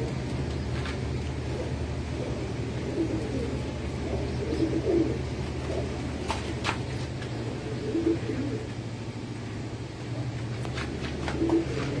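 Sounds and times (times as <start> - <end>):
pigeons cooing: 0.0 - 12.0
steady low hum: 0.0 - 12.0.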